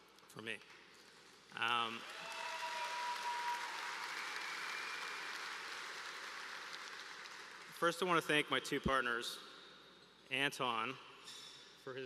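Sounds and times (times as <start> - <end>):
audience applauding: 1.6 - 7.8.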